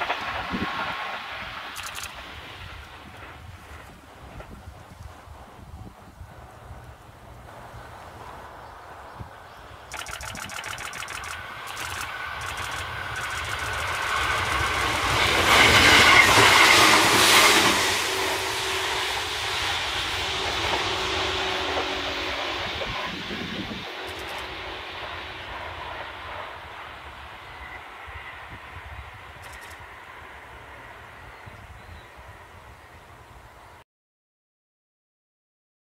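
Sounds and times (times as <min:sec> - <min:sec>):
train wheels clicking on rails: 0:00.0 - 0:09.1, 0:09.8 - 0:30.0
electric train passing: 0:00.0 - 0:33.8.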